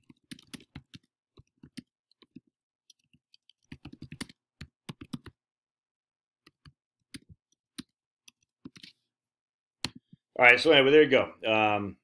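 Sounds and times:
computer keyboard typing: 0.0 - 5.4.

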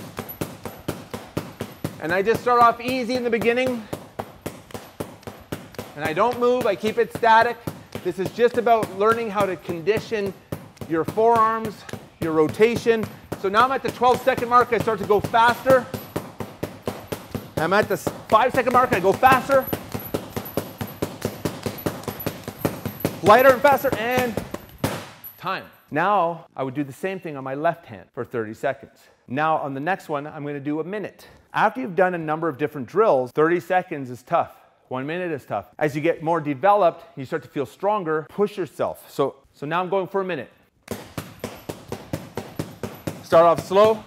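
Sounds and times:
stick striking heavy bag: 0.0 - 25.4, 40.8 - 44.0.

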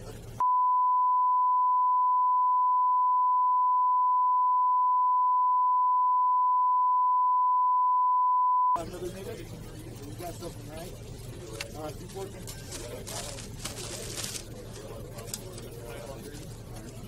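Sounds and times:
censor bleep tone: 0.4 - 8.8.

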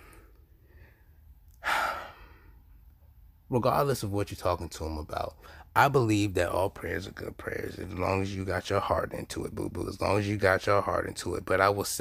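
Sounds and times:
man sighing: 1.6 - 2.3.

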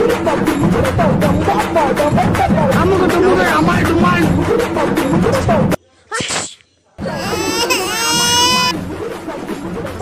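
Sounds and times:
music: 0.0 - 5.8, 7.0 - 10.0
people talking: 1.6 - 4.4
high-pitched crying wail: 7.0 - 8.8.

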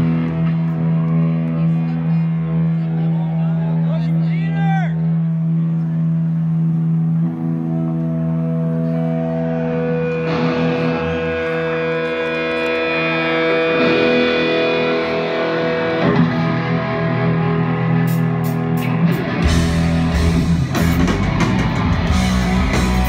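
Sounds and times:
electric guitars sustained chords: 0.0 - 23.0.

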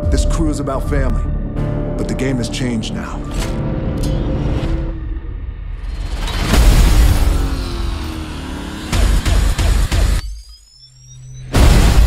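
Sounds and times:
dramatic trailer music: 0.0 - 10.4.

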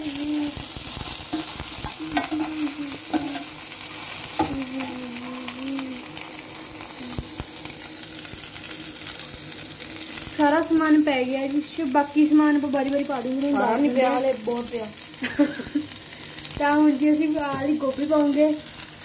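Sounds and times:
vegetables sizzling in oil: 0.0 - 19.0
metal spoon scraping pan: 1.3 - 3.5.

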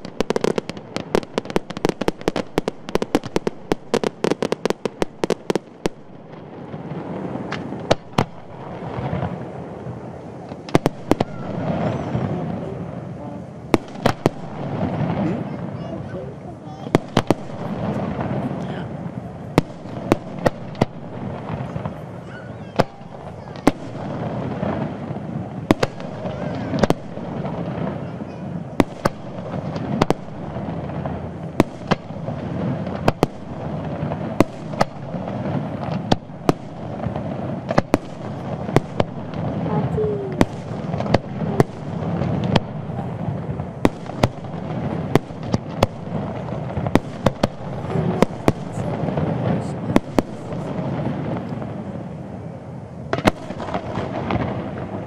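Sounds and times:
fireworks bursting: 0.0 - 55.0.

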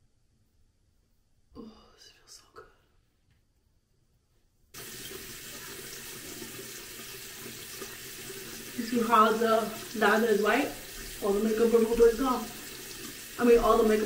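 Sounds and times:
sink tap running: 4.8 - 14.0.

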